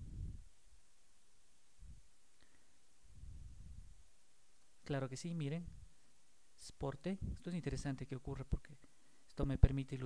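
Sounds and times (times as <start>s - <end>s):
soft low rumble: 0.0s - 0.6s, 3.1s - 4.1s
man speaking: 4.8s - 5.8s, 6.6s - 10.0s.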